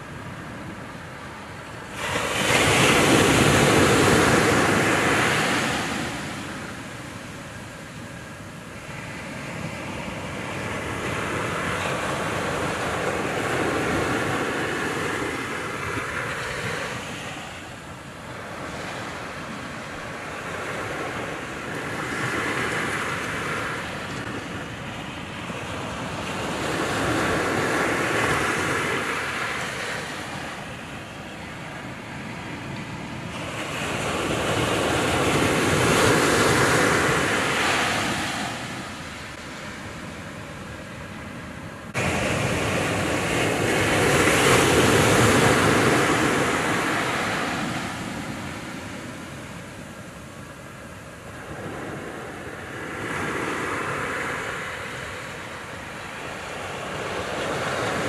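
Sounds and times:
ocean surf breaking on beach: 0.0 - 58.0.

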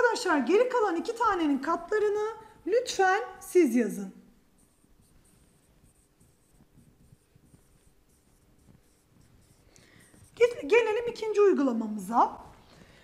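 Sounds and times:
stylus strokes on touchscreen: 0.0 - 13.0.

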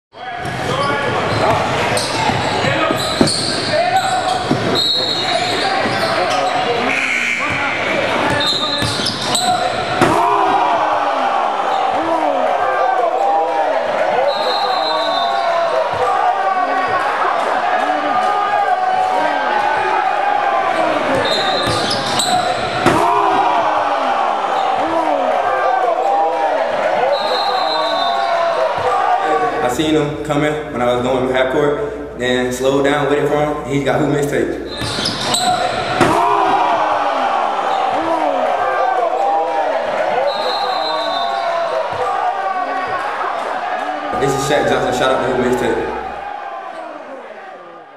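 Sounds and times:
chatter and shouts: 0.1 - 29.7, 34.7 - 47.9
basketballs bouncing on hardwood: 4.3 - 4.8.

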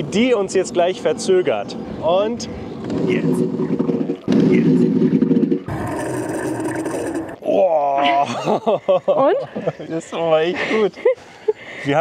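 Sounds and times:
tyres and brakes rumbling: 0.7 - 7.3.

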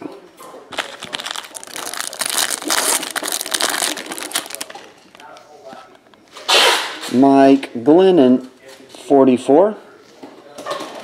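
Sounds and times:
foil wrapper crinkling and tearing: 0.7 - 5.3.

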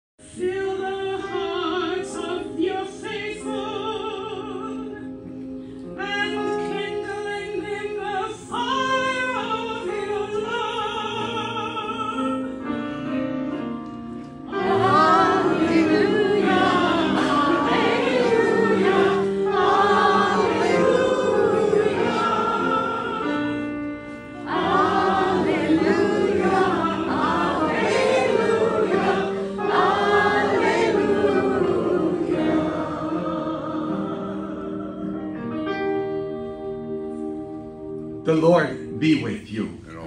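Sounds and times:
choir singing church music: 0.3 - 38.2.

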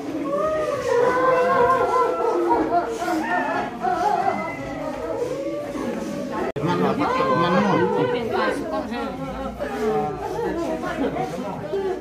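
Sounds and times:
overlapping conversation: 0.0 - 12.0.

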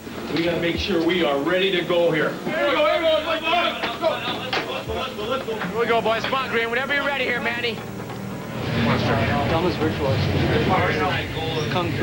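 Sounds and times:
men shouting and talking: 0.4 - 12.0.

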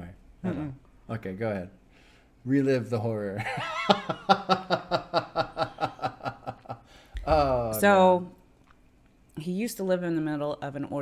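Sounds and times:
man chuckling: 3.4 - 7.7.

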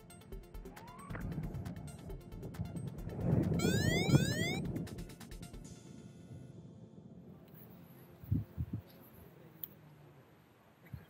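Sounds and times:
wind rumble on microphone: 1.0 - 9.0
rising electronic alarm sweeps: 3.5 - 4.9.

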